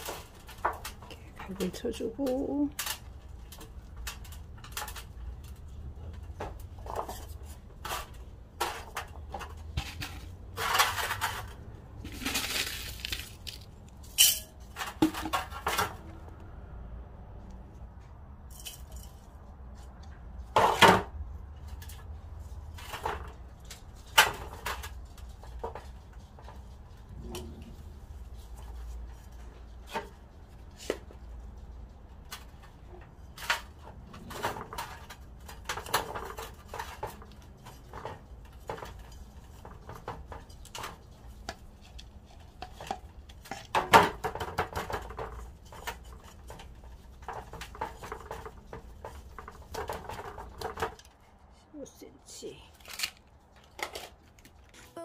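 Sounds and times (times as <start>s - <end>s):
soil pouring into pot: 12.1s - 13.7s
gloved hands rustling soil: 12.1s - 14.0s
pots knocking against metal tub: 14.2s - 16.0s, 42.6s - 51.0s.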